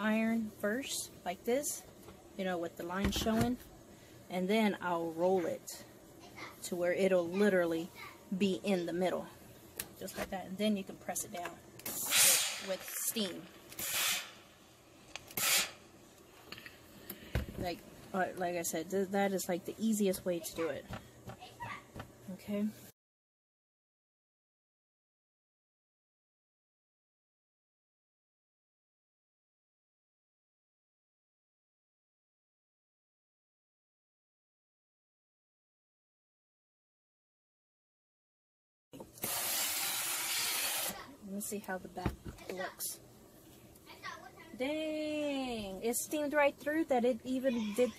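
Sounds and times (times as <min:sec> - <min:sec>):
steam iron hissing: 0:11.8 - 0:12.9, 0:13.8 - 0:14.4, 0:15.4 - 0:15.8, 0:39.2 - 0:41.1.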